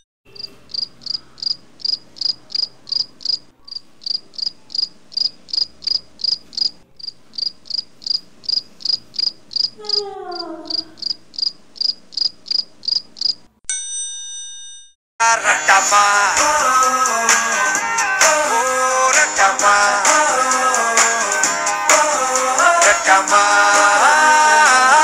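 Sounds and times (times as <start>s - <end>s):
crickets chirping: 0.3s - 13.5s.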